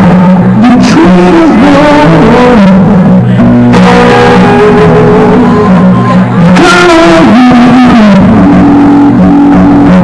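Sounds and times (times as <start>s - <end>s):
acoustic blues guitar: 0.0s - 10.0s.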